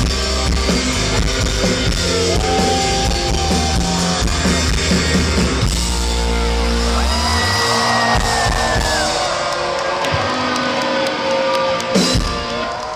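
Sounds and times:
low bass: 0.0 - 9.2
crowd cheering and whooping: 1.8 - 12.9.

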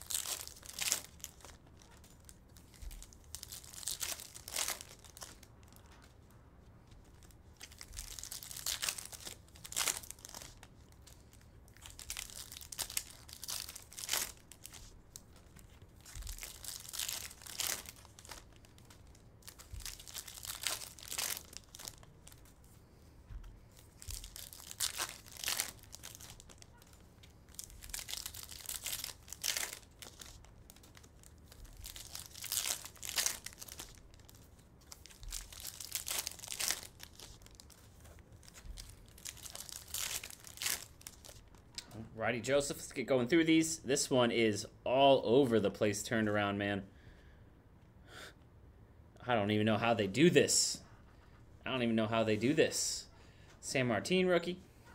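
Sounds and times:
foil wrappers tearing and crinkling: 0.0 - 6.2, 6.9 - 22.6, 23.8 - 41.6.

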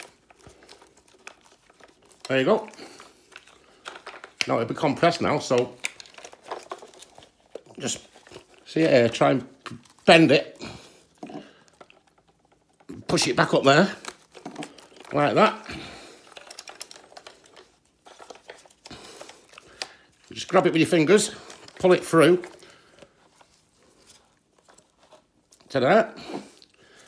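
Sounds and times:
rubber hose clicks and rustles: 0.0 - 27.0.

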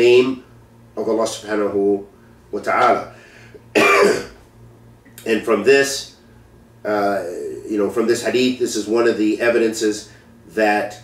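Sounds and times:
man clearing his throat: 3.7 - 4.4.

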